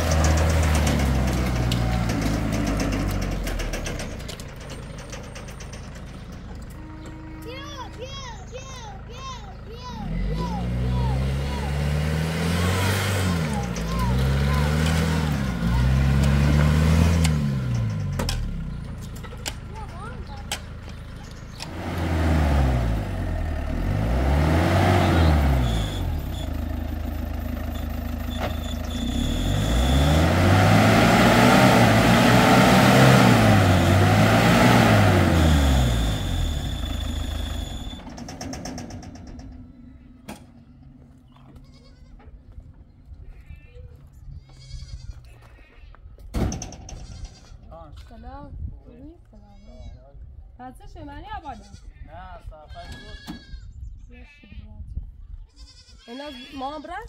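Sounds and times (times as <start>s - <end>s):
pickup truck engine revving: 0.0s - 4.0s, 9.7s - 18.6s, 21.5s - 26.5s, 28.9s - 37.9s
goats or sheep bleating: 41.4s - 42.2s, 43.2s - 46.0s, 51.4s - 54.8s, 55.4s - 57.0s.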